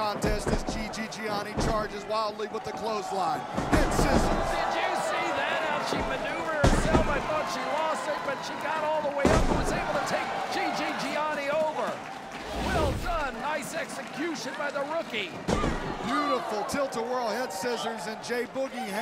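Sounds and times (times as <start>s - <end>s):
crowd shouting and cheering: 0.0s - 19.0s
deep thumps on wrestling ring: 0.2s - 1.9s, 3.5s - 4.8s, 5.9s - 7.3s, 9.2s - 10.0s, 15.5s - 16.0s.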